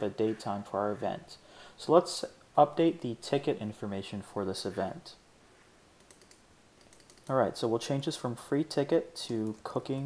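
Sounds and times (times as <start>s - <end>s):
computer mouse clicks: 6.0s - 7.3s, 9.4s - 9.8s.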